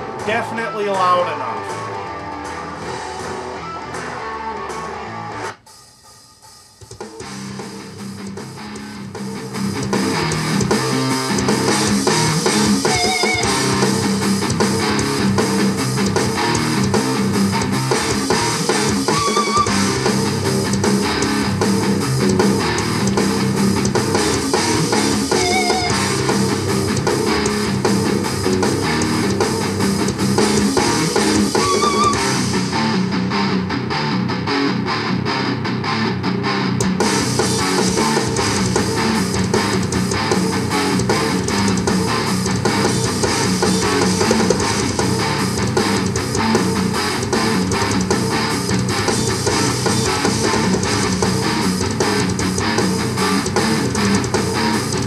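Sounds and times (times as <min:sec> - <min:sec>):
rock song over speakers: 0:00.0 - 0:55.0.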